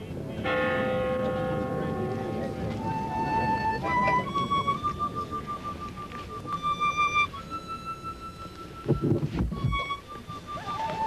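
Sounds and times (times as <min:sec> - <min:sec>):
church bell ringing: 0:00.0 - 0:03.5.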